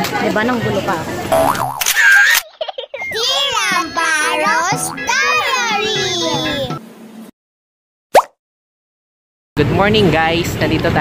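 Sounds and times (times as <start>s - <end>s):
cartoon boing: 1.3s - 2.1s, 4.7s - 5.1s
music: 3.1s - 7.1s.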